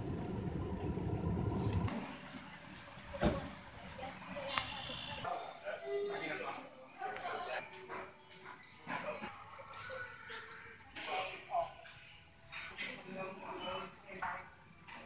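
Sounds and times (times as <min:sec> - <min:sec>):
low vehicle rumble: 0:00.0 - 0:04.2
faint indistinct voices: 0:03.0 - 0:15.0.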